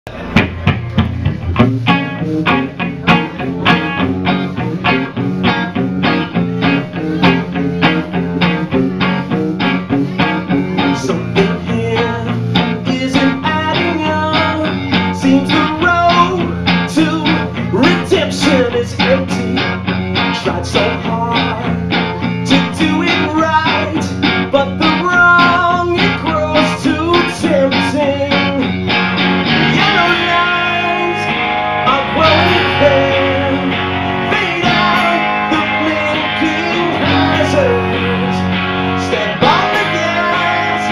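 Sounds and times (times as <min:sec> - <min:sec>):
electric guitars: 0:00.0 - 0:40.9.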